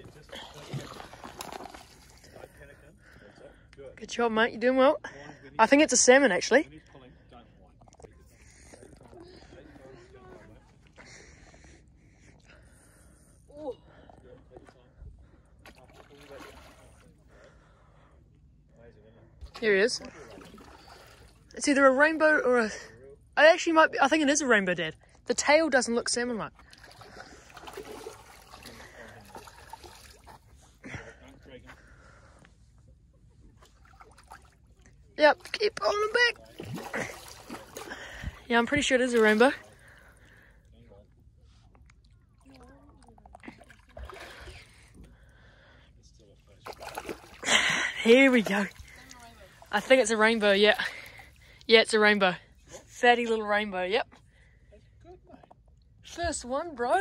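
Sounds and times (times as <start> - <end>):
water splashing and dribbling: 0.0 - 2.5, 15.6 - 17.2, 19.6 - 21.6, 26.6 - 30.8, 33.6 - 40.5, 42.0 - 45.3, 46.5 - 51.6
loud splash: 36.5 - 38.2.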